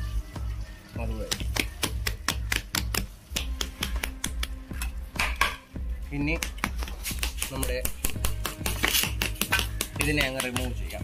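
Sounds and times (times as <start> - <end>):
hands slapping cement mould: 1.2 - 5.6, 6.3 - 11.0.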